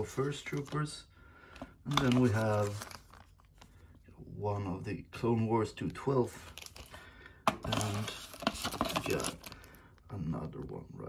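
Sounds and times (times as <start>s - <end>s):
plastic bag crinkling: 1.8s - 4.0s, 5.9s - 10.0s.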